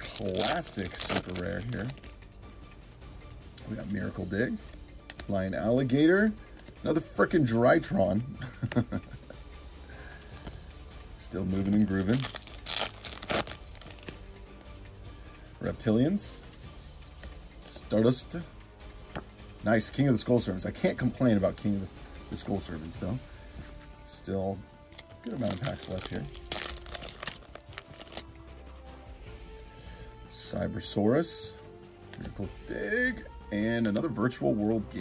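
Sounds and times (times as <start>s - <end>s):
cards rustling and clicking: 0.0s - 2.2s, 4.7s - 5.3s, 11.5s - 14.4s, 24.8s - 28.3s
foil wrapper crinkling: 0.0s - 2.2s, 11.6s - 14.2s, 24.8s - 28.3s.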